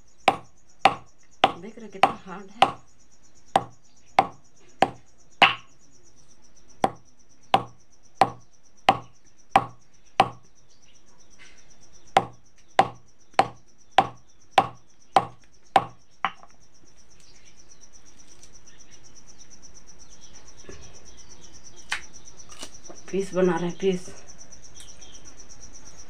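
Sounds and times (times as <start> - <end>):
stone pounding hard fruit: 0.3 - 2.9, 3.6 - 5.7, 6.8 - 10.5, 12.2 - 16.4.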